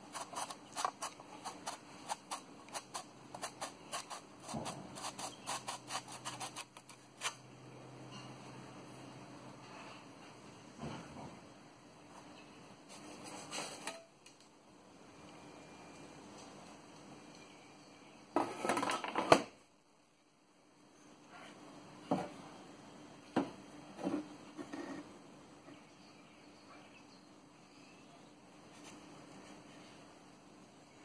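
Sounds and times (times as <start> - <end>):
objects clattering on workbench: 18.4 - 19.6.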